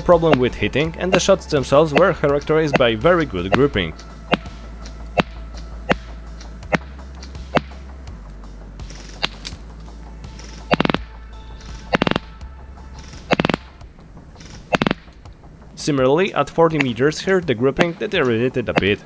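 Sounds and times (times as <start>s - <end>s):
background music with bass: 0.0s - 19.0s
airsoft rifle shots: 10.4s - 11.1s, 13.2s - 13.7s, 14.4s - 15.1s.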